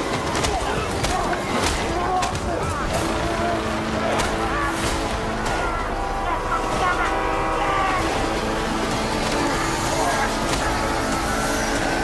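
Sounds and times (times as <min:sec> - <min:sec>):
loud horn-like chord: 0:03.0 - 0:12.0.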